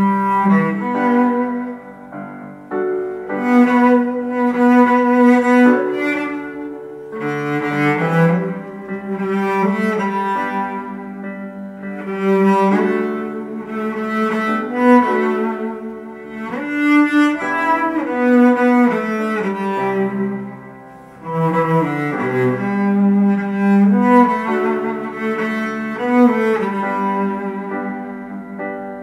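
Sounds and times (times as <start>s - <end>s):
bowed cello melody: 0.0s - 29.0s.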